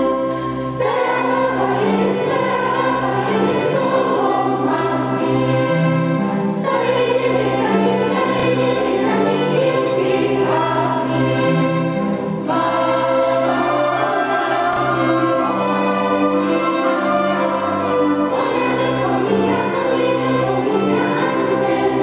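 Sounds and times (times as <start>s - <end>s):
choir singing held notes: 0.0s - 22.0s
violin accompaniment: 0.0s - 22.0s.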